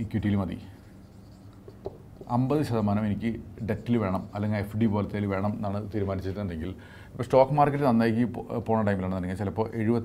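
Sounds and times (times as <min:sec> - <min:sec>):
man talking: 0:00.0 - 0:00.8, 0:02.2 - 0:10.0
marker writing on whiteboard: 0:00.6 - 0:03.0.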